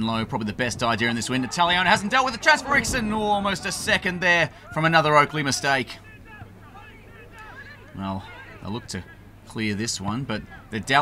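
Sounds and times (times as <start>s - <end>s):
distant voices calling: 0.0s - 11.0s
low steady hum: 0.0s - 11.0s.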